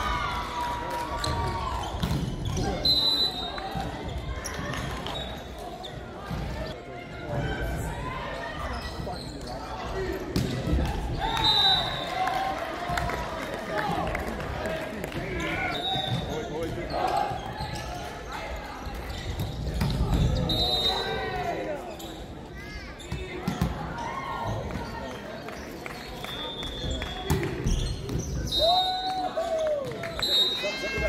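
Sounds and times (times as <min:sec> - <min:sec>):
ball bouncing on court: 0:01.2 - 0:02.6, 0:23.1 - 0:23.8
shoe squeaks on court floor: 0:08.6 - 0:09.7, 0:21.8 - 0:23.7, 0:24.8 - 0:28.6.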